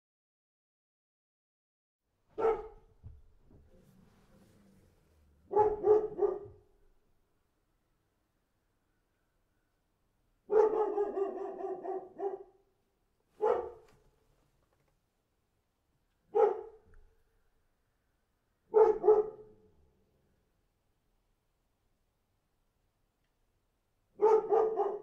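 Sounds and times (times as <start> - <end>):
dog barking: 2.4 - 3.0, 5.4 - 6.7, 10.4 - 12.7, 13.4 - 13.9, 16.3 - 16.9, 18.7 - 19.7, 24.2 - 25.0.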